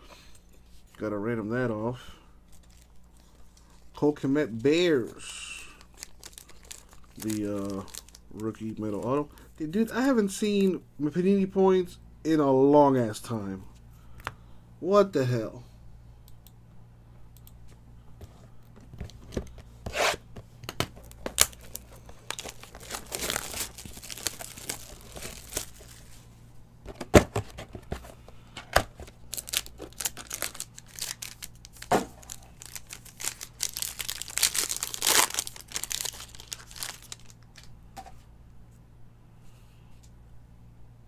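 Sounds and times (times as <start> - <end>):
foil wrapper crinkling: 2.5 - 3.7, 4.5 - 10.2, 21.0 - 26.2, 28.8 - 37.7.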